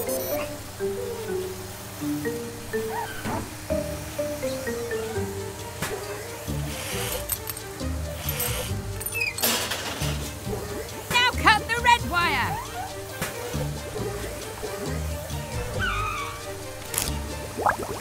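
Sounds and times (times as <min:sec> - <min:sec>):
high chirping robot voices: 0:00.0 - 0:01.7, 0:02.3 - 0:05.5, 0:15.7 - 0:16.6
upbeat cartoon music: 0:00.0 - 0:18.0
water spraying and sloshing: 0:12.6 - 0:18.0.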